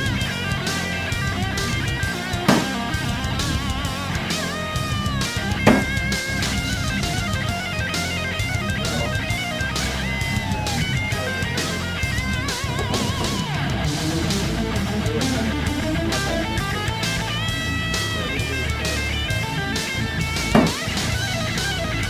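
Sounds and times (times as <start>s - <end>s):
rock music with guitar and drums: 0.0s - 22.0s
bayonet striking wooden plank: 2.5s - 2.8s, 5.7s - 6.0s, 20.5s - 20.9s.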